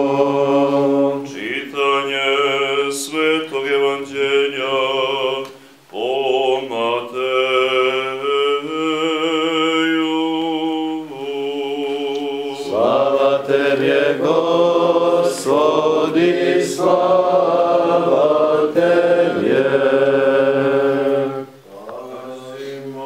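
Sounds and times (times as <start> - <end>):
men's liturgical chant: 0.0 - 23.0.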